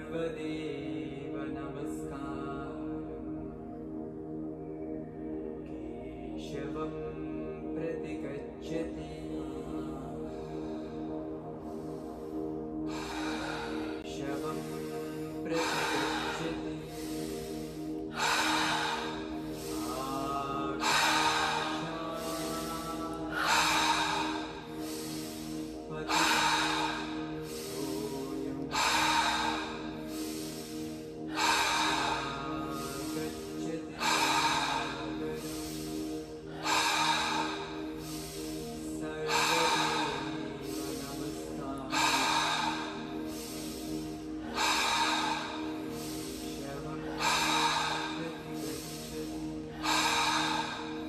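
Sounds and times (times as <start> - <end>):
ambient music with held tones: 0.0 - 51.0
deep slow breathing: 0.0 - 51.0.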